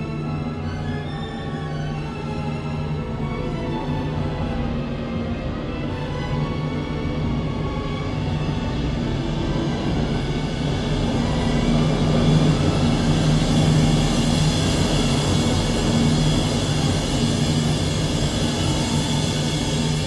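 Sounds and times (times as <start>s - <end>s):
symphony orchestra playing: 0.0s - 10.1s.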